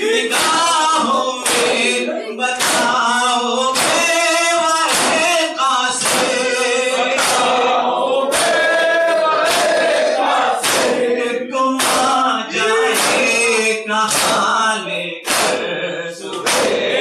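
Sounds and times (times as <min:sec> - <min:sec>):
men chanting in unison: 0:00.0 - 0:17.0.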